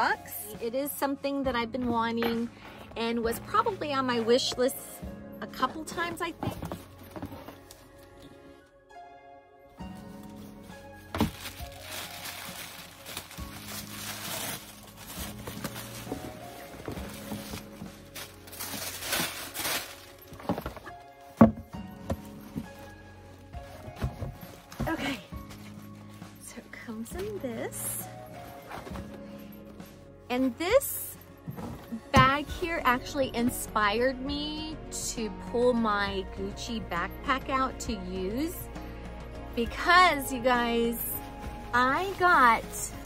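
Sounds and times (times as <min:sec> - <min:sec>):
background music: 0:00.0 - 0:43.0
packaging rustling and crinkling: 0:09.8 - 0:29.4.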